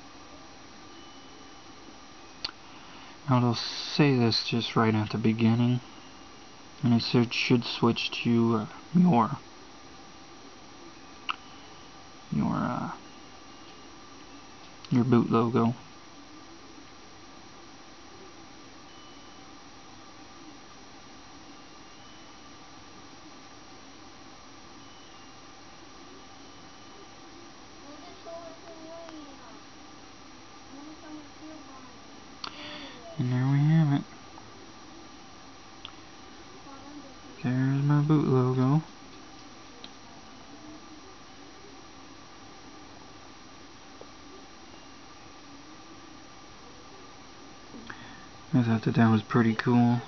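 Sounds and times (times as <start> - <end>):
low background hiss and hum: 0.0 - 50.0.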